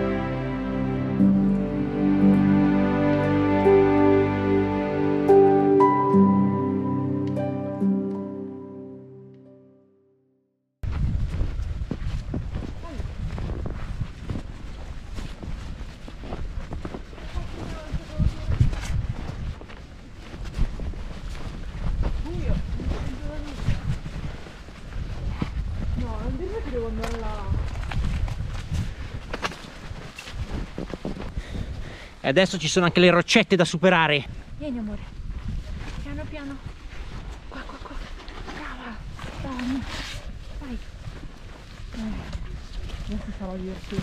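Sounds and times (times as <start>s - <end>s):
footsteps crunching in snow: 10.8s - 31.4s, 35.1s - 44.0s
wind: 10.8s - 44.0s.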